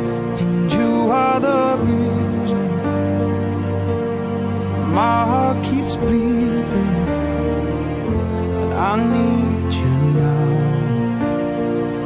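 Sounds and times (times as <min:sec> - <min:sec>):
slow pop ballad music: 0:00.0 - 0:12.0.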